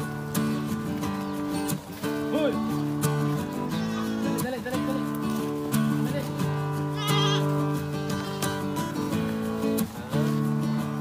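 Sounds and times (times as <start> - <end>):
acoustic guitar music: 0.0 - 11.0
goat bleating: 3.5 - 5.1, 6.9 - 8.8.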